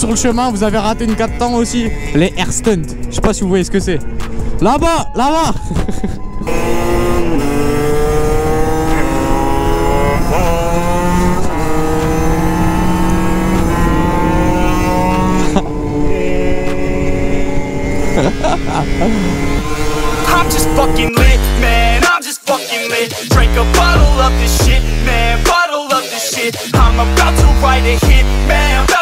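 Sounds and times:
two-stroke motorbike engines revving: 0.0s - 4.9s, 5.6s - 22.1s, 23.2s - 25.5s, 26.7s - 29.0s.

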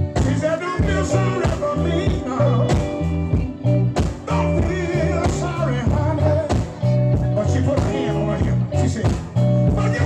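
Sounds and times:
blues band playing: 0.0s - 10.0s
lead singer: 0.0s - 10.0s.

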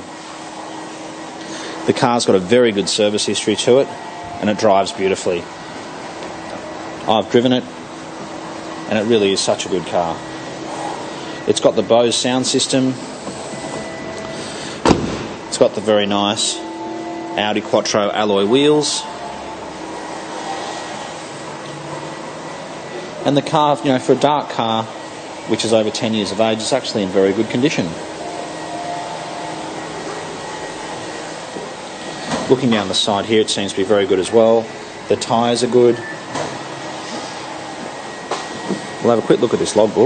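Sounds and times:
air-conditioning hiss: 0.0s - 40.0s.

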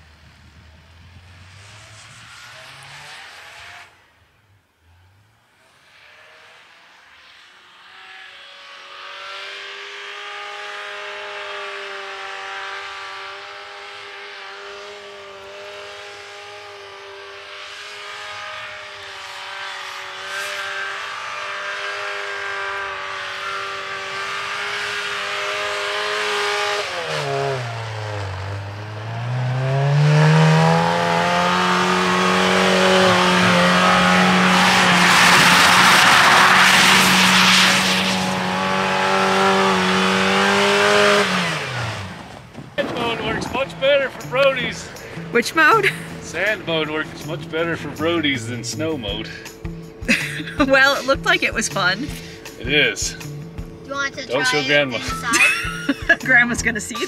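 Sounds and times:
car engine revving: 0.0s - 57.0s
tyres churning snow: 10.0s - 49.4s, 50.1s - 53.2s, 53.9s - 57.0s.

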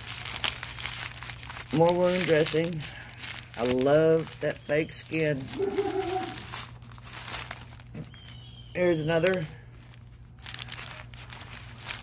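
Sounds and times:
plastic packets crinkling: 0.0s - 12.0s.

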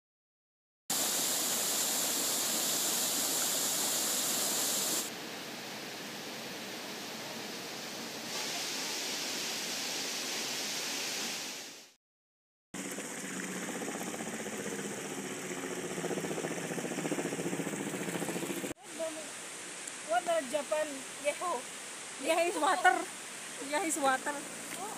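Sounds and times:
waterfall rushing: 0.9s - 11.8s, 18.8s - 24.9s
river running over boulders: 17.5s - 24.9s
voices: 20.1s - 24.9s.

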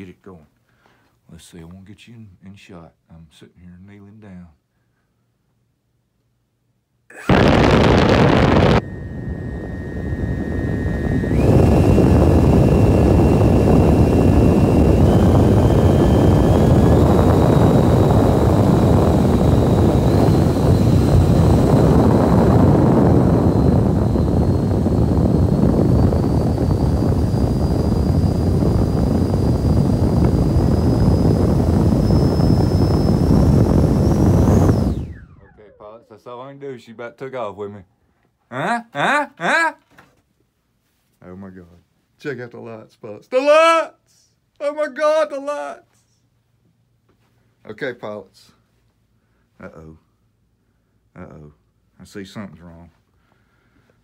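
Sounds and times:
electric ducted fan whining: 7.1s - 37.8s.

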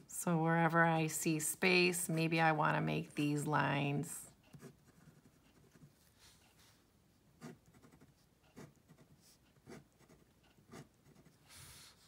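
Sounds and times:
pen scratching on paper: 4.5s - 6.8s, 7.4s - 12.0s.

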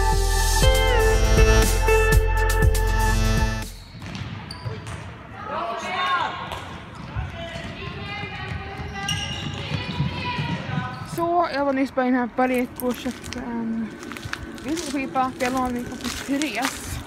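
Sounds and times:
ball bouncing on court floor: 3.8s - 5.2s, 6.4s - 11.0s.

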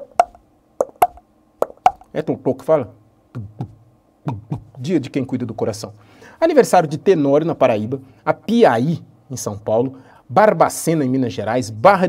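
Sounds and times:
lip pops imitating a heartbeat: 0.0s - 2.1s.

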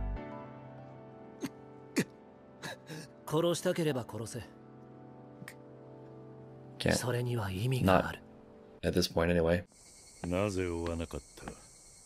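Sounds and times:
quiet score with held tones: 0.0s - 12.0s.

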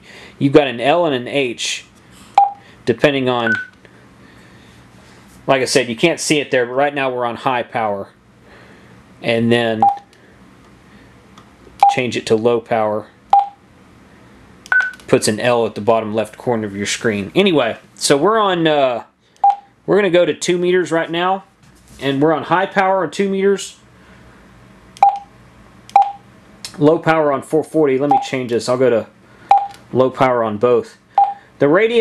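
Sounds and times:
radio key beep: 3.4s - 3.8s.

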